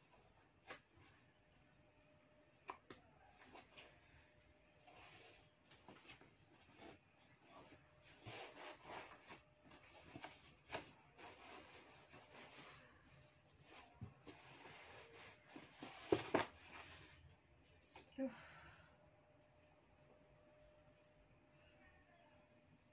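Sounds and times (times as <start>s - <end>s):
items rustling in cardboard box: 4.8s - 17.3s.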